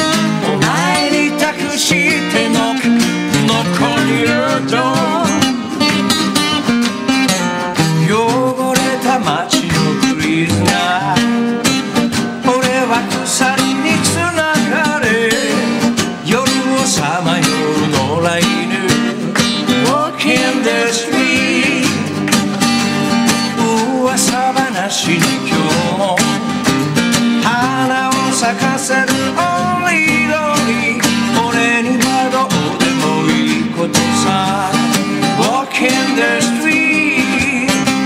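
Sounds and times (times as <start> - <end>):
man singing: 0.0 - 5.9, 7.7 - 22.2, 23.4 - 26.5, 27.4 - 38.0
acoustic guitar: 0.0 - 38.0.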